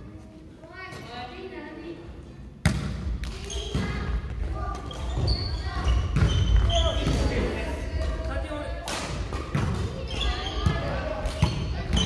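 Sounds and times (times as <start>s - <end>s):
sneaker squeaks: 3.4s - 4.1s, 4.7s - 7.4s, 9.5s - 12.0s.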